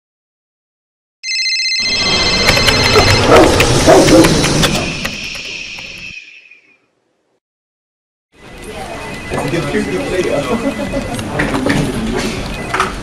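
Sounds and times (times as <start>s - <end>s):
high electronic ringing tone: 1.2s - 6.8s, 8.4s - 11.6s, 12.3s - 13.0s
clatter and rumble: 2.2s - 5.4s.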